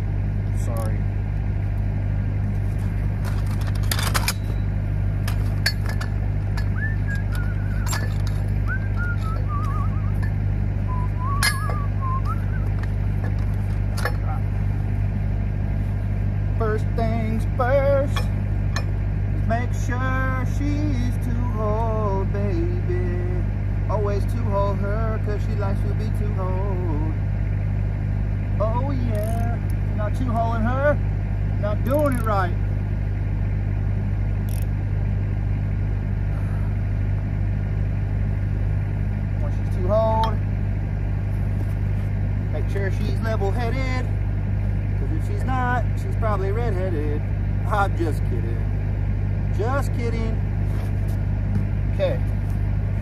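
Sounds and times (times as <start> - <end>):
engine idling: 0.0 - 53.0
steel pipe fittings clinking: 3.2 - 10.4, 11.3 - 12.0.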